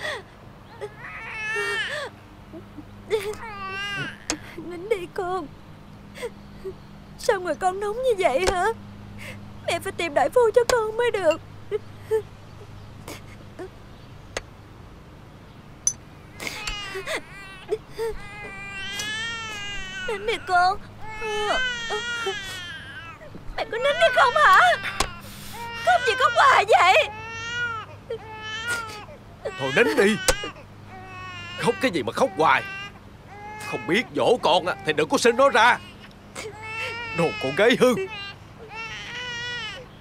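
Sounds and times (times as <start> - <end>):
infant crying: 0.0 - 2.1, 3.1 - 4.6, 16.4 - 39.9.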